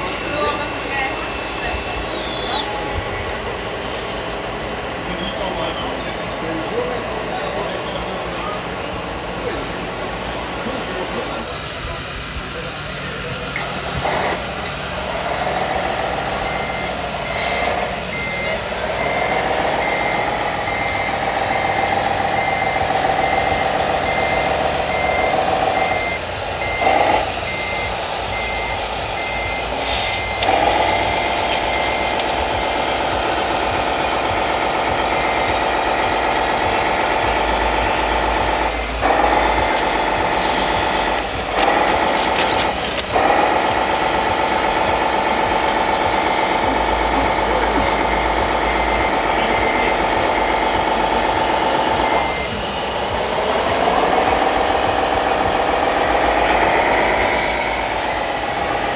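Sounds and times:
warning beeper beeps: 0.0 - 8.6, 10.8 - 58.9
hydraulic pump whining: 0.0 - 58.9.

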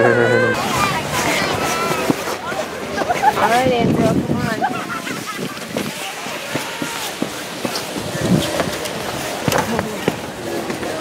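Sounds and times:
faint voices: 0.0 - 11.0
steady outdoor hiss: 0.0 - 11.0.

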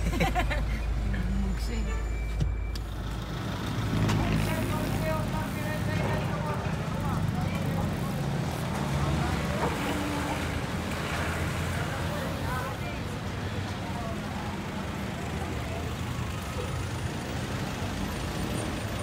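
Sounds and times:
car engine rumble: 0.0 - 10.7
road noise: 0.0 - 19.0
traffic: 0.0 - 19.0.

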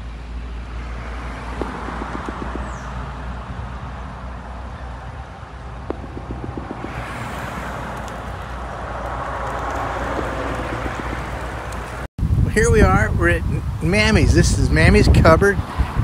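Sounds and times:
vehicle road and engine noise: 0.0 - 16.0.

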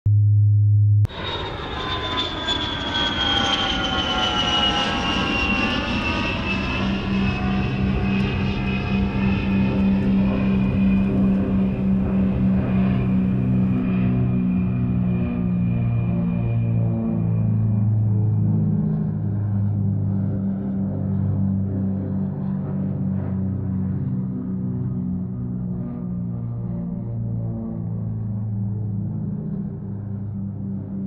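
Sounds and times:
low electronic tone: 0.0 - 3.4
aircraft engine whine: 0.2 - 31.0.

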